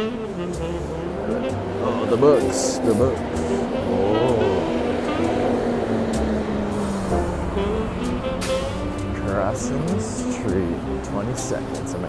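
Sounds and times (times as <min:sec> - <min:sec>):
cars passing: 0:00.0 - 0:12.0
music with held low notes: 0:00.0 - 0:12.0.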